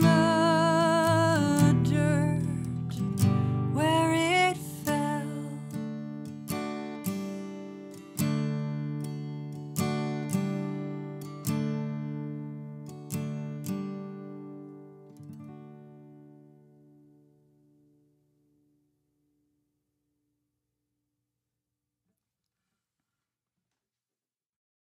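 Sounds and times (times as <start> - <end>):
acoustic guitar chord strums: 0.0 - 19.5.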